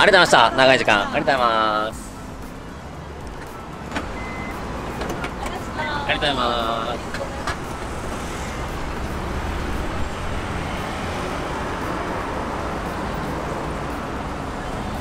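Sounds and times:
street traffic noise: 0.0 - 15.0.

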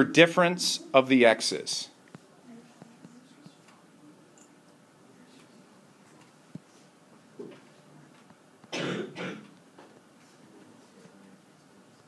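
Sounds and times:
person coughing: 8.7 - 9.5.

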